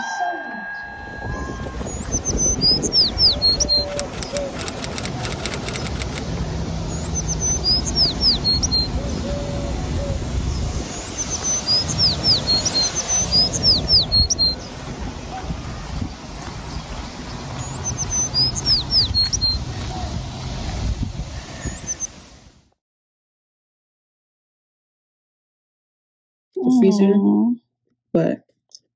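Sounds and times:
songbird singing: 0:00.6 - 0:20.1.

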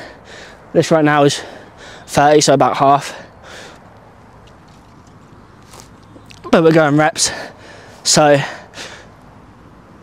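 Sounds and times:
short breath: 0:01.4 - 0:02.1, 0:03.1 - 0:03.9.

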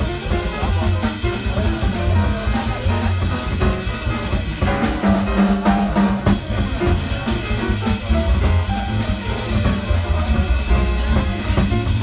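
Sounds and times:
drum kit and cymbals: 0:00.0 - 0:12.0
grand piano: 0:00.0 - 0:12.0
low bass line: 0:00.0 - 0:12.0.

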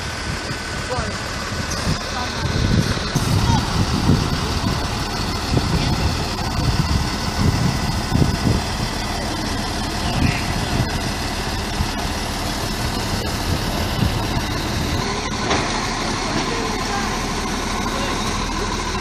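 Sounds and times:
continuous rushing noise: 0:00.0 - 0:19.0
truck engine idling: 0:00.0 - 0:19.0.

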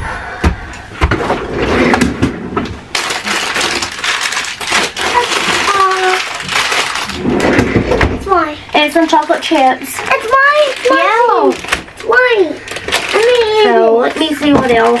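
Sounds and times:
plastic packaging rustling: 0:02.8 - 0:15.0.

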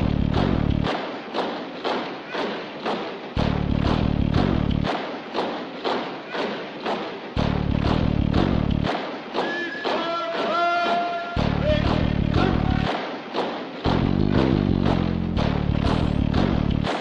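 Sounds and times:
deep bass note: 0:00.0 - 0:00.9, 0:03.4 - 0:04.9, 0:07.4 - 0:08.9, 0:11.4 - 0:12.9, 0:13.9 - 0:16.9
heavy beat music: 0:00.0 - 0:17.0.

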